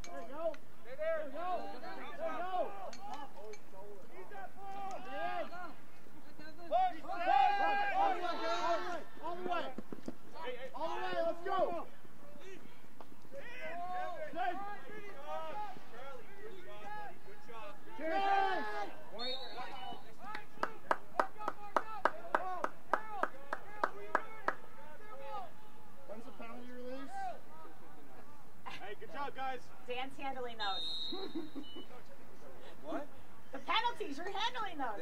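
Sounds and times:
people shouting calls: 0.1s - 3.5s, 4.2s - 5.8s, 6.6s - 9.8s, 10.4s - 12.7s, 13.3s - 25.8s.

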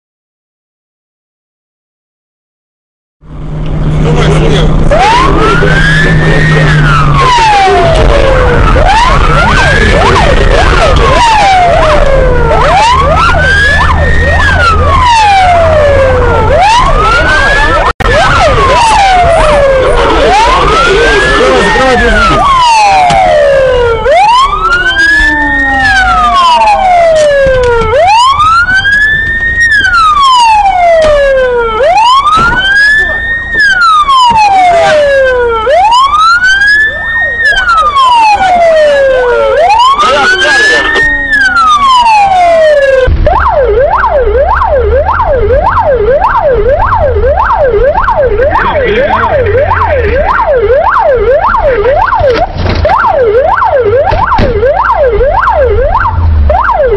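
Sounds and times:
police siren wailing: 3.2s - 56.9s
fast short-cycling siren: 3.3s - 56.9s.

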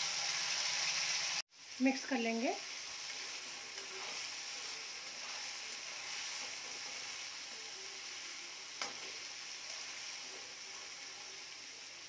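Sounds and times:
chickpeas sizzling in hot oil: 0.0s - 12.0s.

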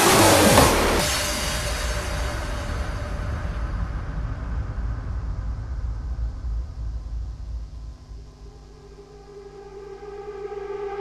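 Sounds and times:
deep rumbling noise effect: 0.0s - 11.0s
sustained synthesizer chords: 0.0s - 11.0s.

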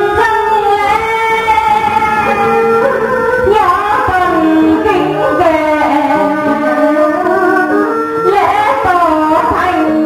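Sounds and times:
ceremonial instrumental melody: 0.0s - 10.0s.

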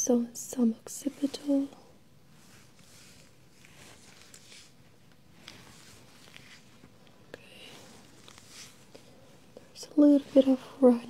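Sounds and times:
person speaking: 0.0s - 1.9s, 9.6s - 11.0s
gloved fingertips rubbing skin: 1.0s - 11.0s.

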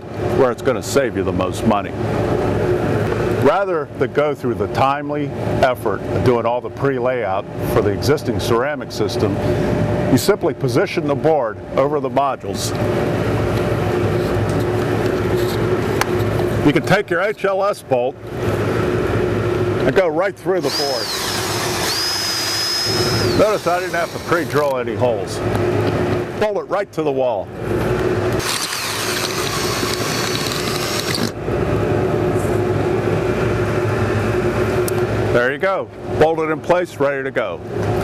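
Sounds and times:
machinery hum: 0.0s - 36.6s
cordless drill running: 20.6s - 24.8s, 28.4s - 31.4s.

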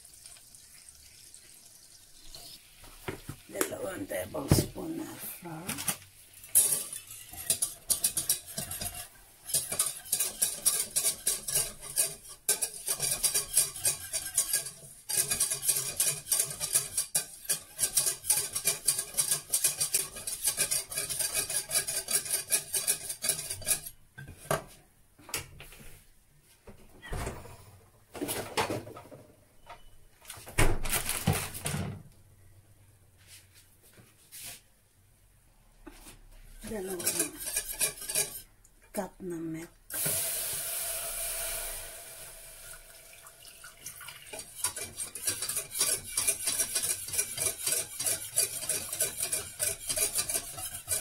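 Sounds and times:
whisk scraping pan: 2.2s - 24.6s, 36.6s - 38.6s, 43.8s - 51.0s
whisk clattering against saucepan: 6.4s - 24.0s, 36.7s - 38.5s, 44.0s - 51.0s.

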